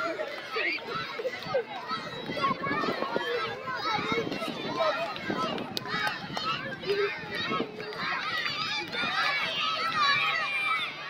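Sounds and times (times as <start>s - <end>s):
crowd of children shouting: 0.0s - 11.0s.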